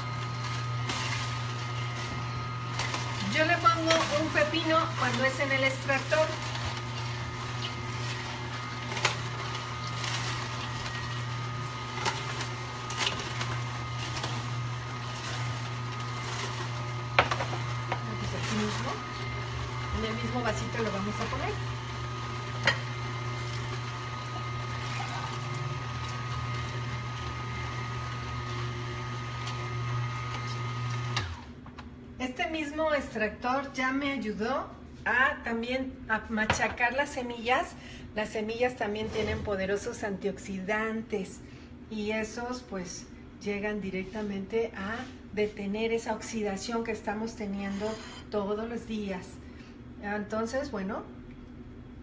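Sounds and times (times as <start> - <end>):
juicer motor humming: 0.0 - 32.2.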